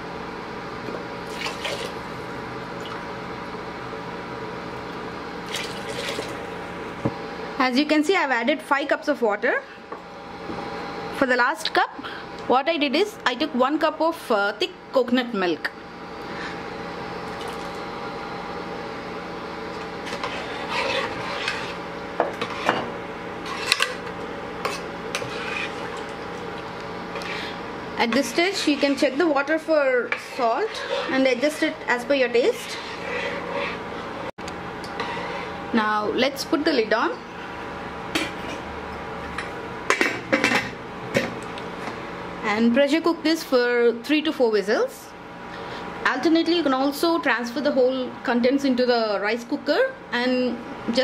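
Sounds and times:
steady hum: 0:00.0 - 0:51.0
ladle stirring rice: 0:19.8 - 0:22.8, 0:23.4 - 0:34.0.

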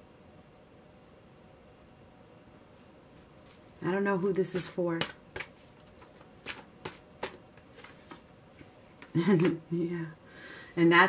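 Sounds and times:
cards snapping while shuffled: 0:04.6 - 0:08.2.

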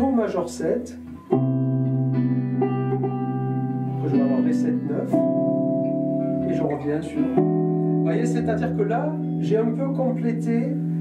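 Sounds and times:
guitar chord ringing: 0:00.8 - 0:11.0.

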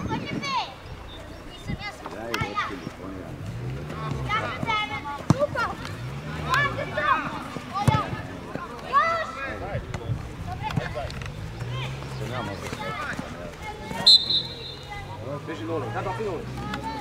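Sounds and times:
people shouting: 0:13.9 - 0:15.2
referee's whistle blast: 0:14.0 - 0:14.9.

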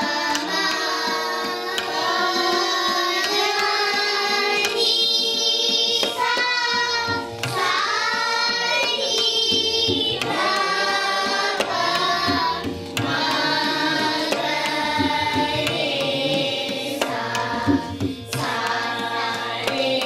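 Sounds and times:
children singing together: 0:00.0 - 0:20.0
tabla: 0:00.0 - 0:20.0.

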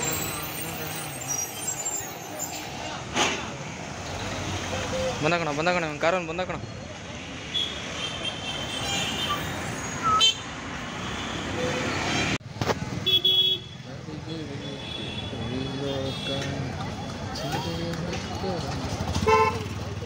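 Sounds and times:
traffic engines and tyres: 0:00.0 - 0:20.0
vehicle horns tooting: 0:07.5 - 0:11.6, 0:13.0 - 0:13.9, 0:14.5 - 0:16.6, 0:19.1 - 0:19.8.

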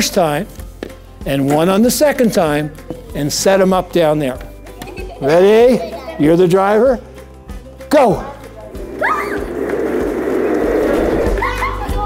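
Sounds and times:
scooter casters rolling on wood: 0:08.5 - 0:12.0
child squealing: 0:09.0 - 0:09.5.

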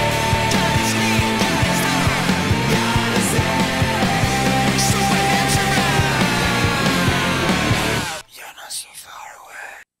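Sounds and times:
rock music: 0:00.0 - 0:08.2
person whispering: 0:08.2 - 0:10.0.

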